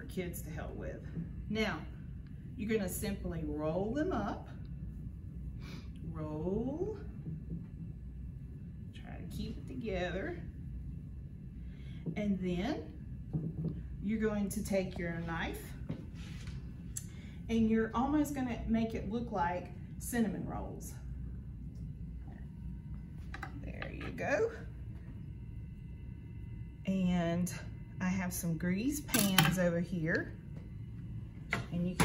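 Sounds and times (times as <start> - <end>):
low room hum: 0.0 - 32.0.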